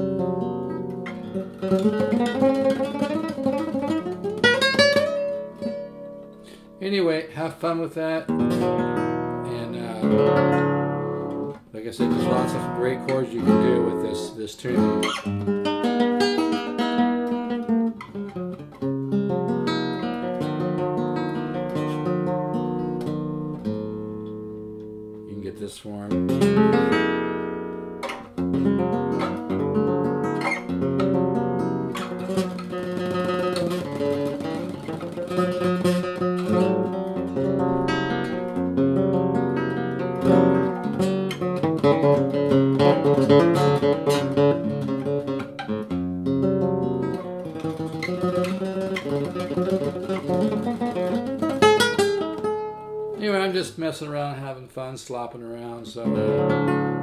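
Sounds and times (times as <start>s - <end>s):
classical guitar playing: 0.0s - 57.0s.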